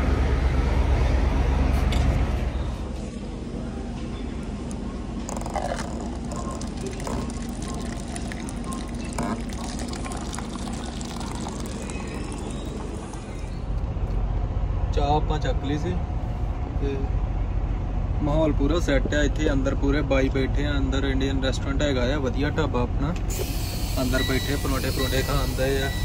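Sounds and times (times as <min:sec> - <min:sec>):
steady hum: 0:00.0 - 0:18.6
tea pouring into paper cup: 0:05.2 - 0:13.7.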